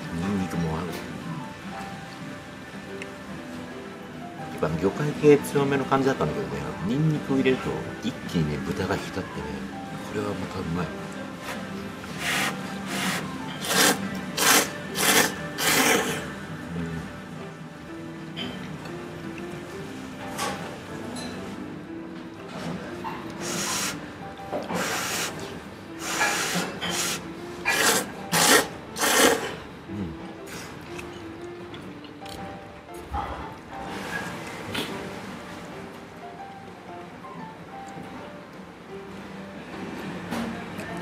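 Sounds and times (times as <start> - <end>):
person slurping noodles: 12.2 - 17.1, 23.4 - 24.0, 24.7 - 25.4, 26.0 - 30.7.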